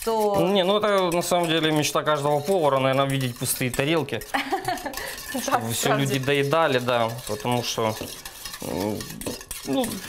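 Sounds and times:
utensil scraping metal bowl: 0:00.0 - 0:10.0.

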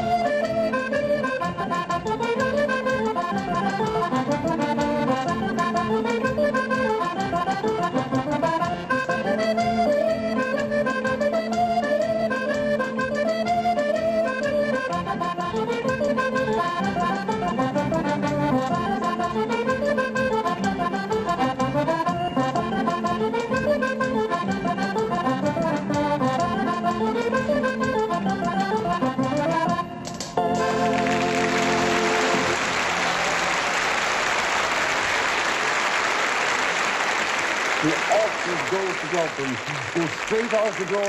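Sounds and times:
accordion playing dance tune: 0:00.0 - 0:41.0.

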